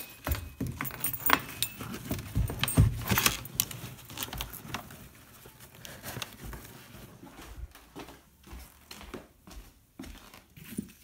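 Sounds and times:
shoes clicking and rattling: 0.0 - 11.0.

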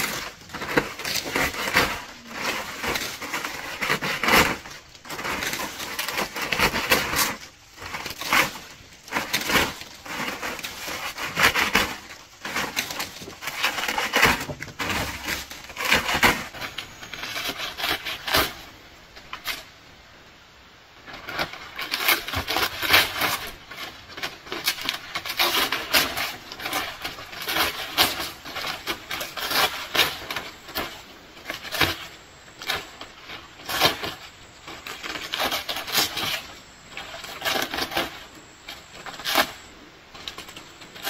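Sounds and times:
dry leaf thatch rustling: 0.0 - 19.8, 21.0 - 41.0.

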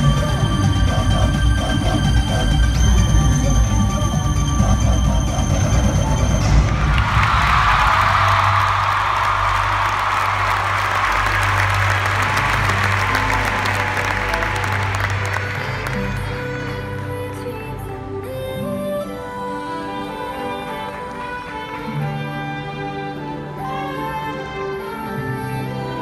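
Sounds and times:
show music over speakers: 0.0 - 18.3
crowd applauding and cheering: 4.3 - 17.9.

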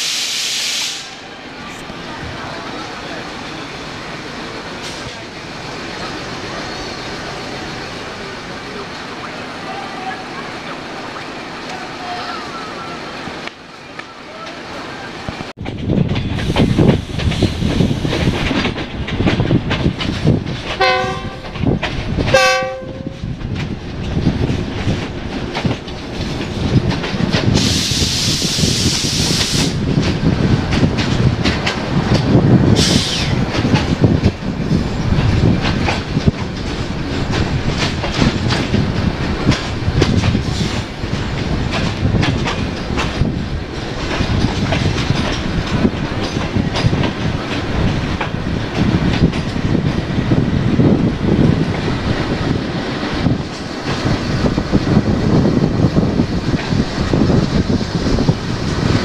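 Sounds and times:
loud hiss: 0.0 - 1.3, 27.6 - 29.8, 32.8 - 33.4
train rumbling past: 0.0 - 59.0
wheels clacking over rail joints: 1.6 - 27.8, 28.6 - 59.0
train horn blasts: 20.8 - 21.6, 22.3 - 23.2.

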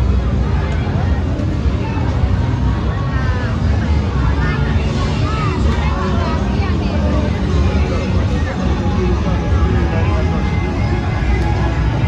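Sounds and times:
loud steady low rumble: 0.0 - 12.0
voices talking: 0.0 - 12.0.

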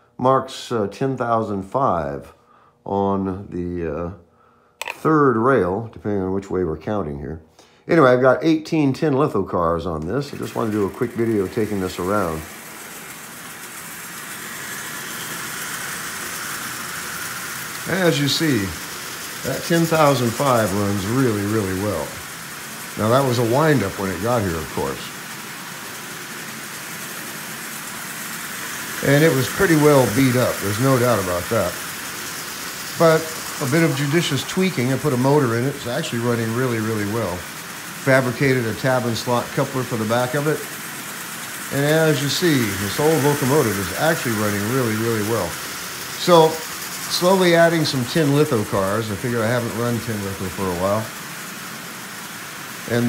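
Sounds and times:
toy train rattling on track: 9.8 - 53.0
electric motor whir: 10.2 - 53.0.

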